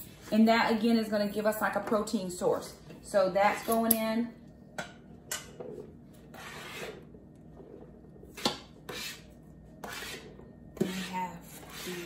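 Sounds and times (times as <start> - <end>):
knife scraping a cutting board: 5.7 - 7.1, 8.3 - 12.0.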